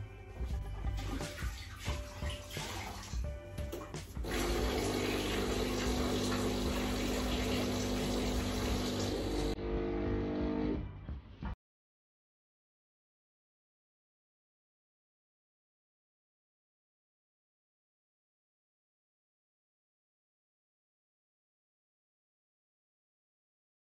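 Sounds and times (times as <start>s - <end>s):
background music: 0.0s - 11.6s
running water rushing: 1.0s - 3.3s, 4.2s - 9.6s.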